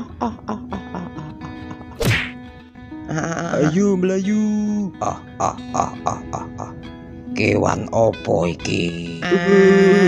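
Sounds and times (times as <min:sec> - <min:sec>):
soft background music: 0:00.0 - 0:10.0
cartoon impact whack: 0:02.0 - 0:02.4.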